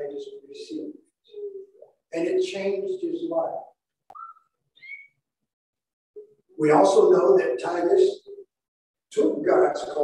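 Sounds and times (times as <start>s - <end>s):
whistle-like squeaks: 4.1s - 5.2s.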